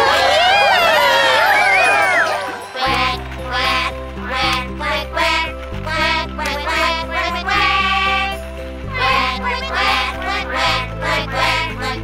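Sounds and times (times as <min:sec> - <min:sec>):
upbeat children's music: 0:00.0 - 0:12.0.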